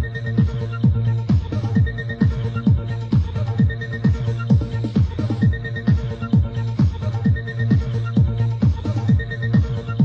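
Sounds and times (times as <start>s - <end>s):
electronic dance music from tape: 0.0s - 10.0s.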